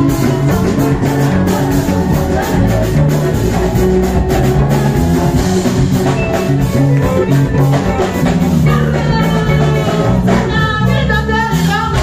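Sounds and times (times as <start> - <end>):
person singing: 0.0 - 5.7, 6.3 - 12.0
bass line: 0.0 - 12.0
drum kit beat: 0.0 - 12.0
live band music: 0.0 - 12.0.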